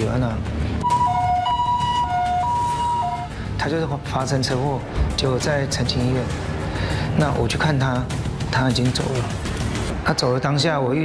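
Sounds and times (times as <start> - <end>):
two-tone ambulance siren: 0.8 - 3.4.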